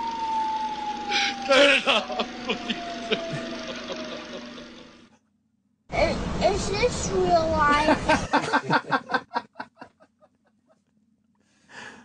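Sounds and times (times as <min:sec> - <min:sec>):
steady drone with falling tone: 0:00.0 - 0:05.1.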